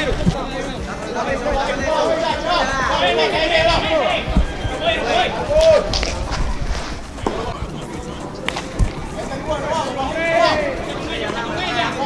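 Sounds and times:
music: 0.0s - 12.0s
voices on a field: 0.0s - 12.0s.

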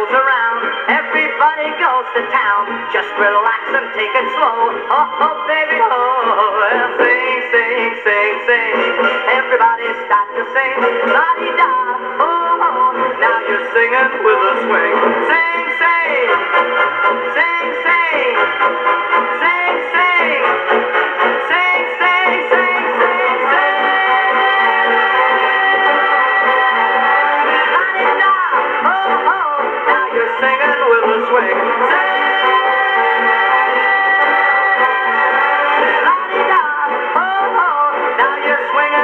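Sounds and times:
swing music on gramophone: 0.0s - 39.0s.

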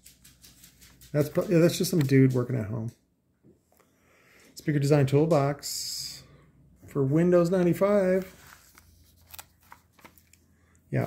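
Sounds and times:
paper pages rustling: 0.0s - 2.7s, 7.4s - 11.0s.

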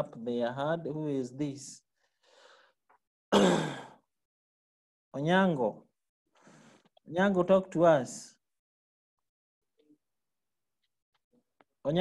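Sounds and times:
faint breath: 2.0s - 2.8s, 6.4s - 6.9s
man coughing: 3.3s - 4.0s.

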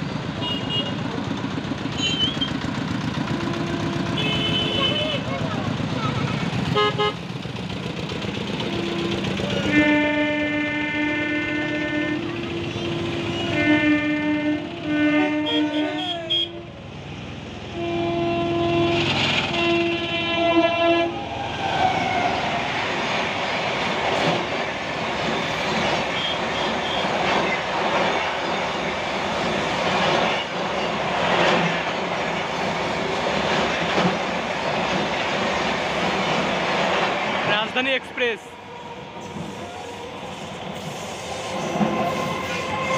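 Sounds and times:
train wheels rushing on rails: 0.0s - 42.9s
two-tone train horn blasts: 0.4s - 1.0s, 2.0s - 2.5s, 3.3s - 5.2s, 6.8s - 7.2s, 8.6s - 16.8s, 17.7s - 21.2s, 26.1s - 27.1s, 41.6s - 42.9s.

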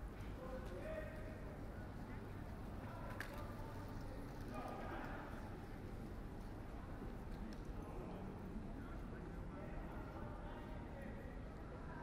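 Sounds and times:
faint voices of passers-by: 0.0s - 12.0s
low city rumble: 0.0s - 12.0s.

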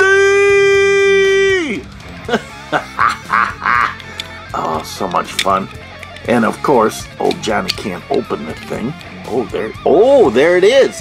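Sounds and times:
background music with guitar: 0.0s - 11.0s.

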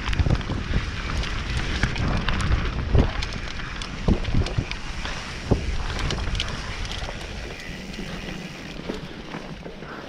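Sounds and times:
bike clattering over bumps: 0.0s - 10.0s
bike tyres rumbling on dirt: 0.0s - 10.0s
wind buffeting microphone: 0.0s - 10.0s.

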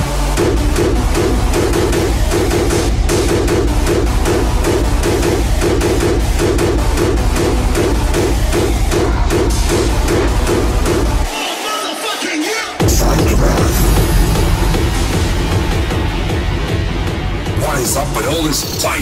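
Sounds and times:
hard dance electronic music: 0.0s - 19.0s.

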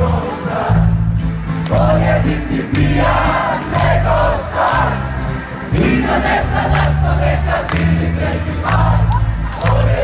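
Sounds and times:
crowd singing along: 0.0s - 10.0s
steady bass notes: 0.0s - 10.0s.

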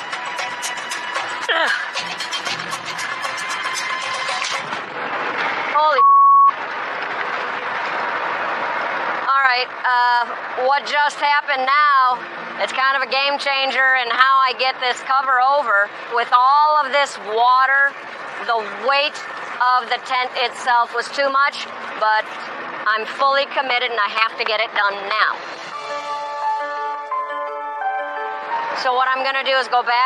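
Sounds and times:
censor bleep: 5.9s - 6.6s
dense rain: 6.6s - 24.0s
soft music score: 25.7s - 28.8s.

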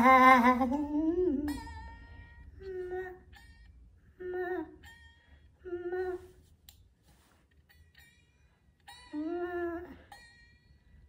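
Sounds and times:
man singing wavering note: 0.0s - 3.4s.

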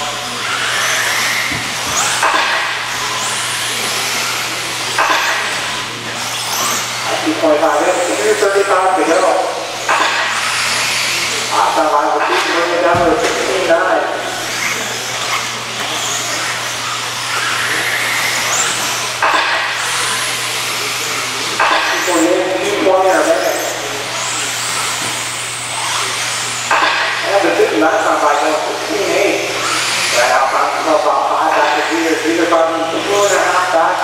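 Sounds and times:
rc car motors whining: 0.0s - 34.0s.

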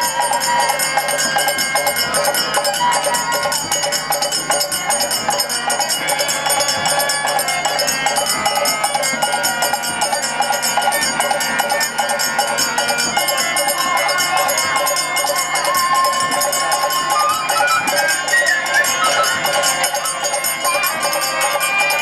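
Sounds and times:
bamboo flute: 0.0s - 22.0s
drum strokes: 0.0s - 22.0s
harmonium: 0.0s - 22.0s
small hand cymbals ringing: 0.0s - 22.0s.

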